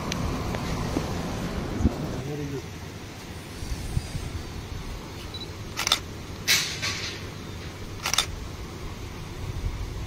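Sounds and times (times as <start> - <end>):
camera shutter clicking: 5.7 - 6.1, 8.0 - 8.3.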